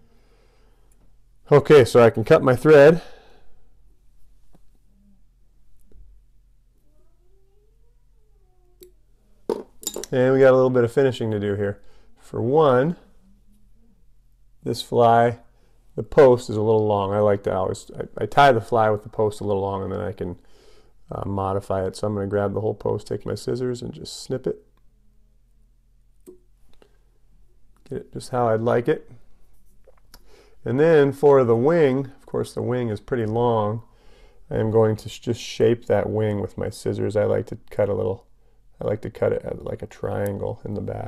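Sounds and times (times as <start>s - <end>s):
low steady hum: 0.0s - 41.0s.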